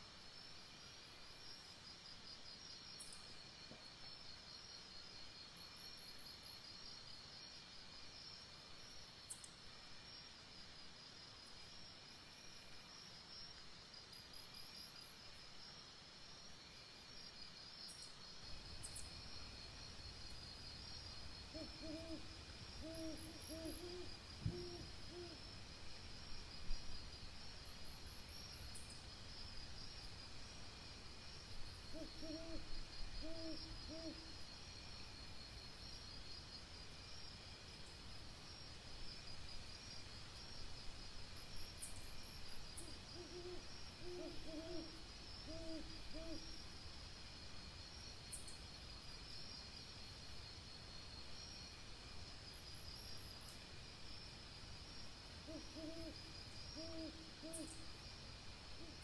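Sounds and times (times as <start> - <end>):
night insects chirring: 0.0 - 59.0
owl hooting: 21.5 - 25.4, 31.9 - 34.2, 42.8 - 46.5, 55.4 - 56.2, 56.8 - 57.8.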